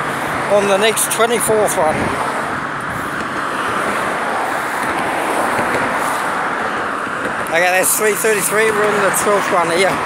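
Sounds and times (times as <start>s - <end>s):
road traffic hiss: 0.0s - 10.0s.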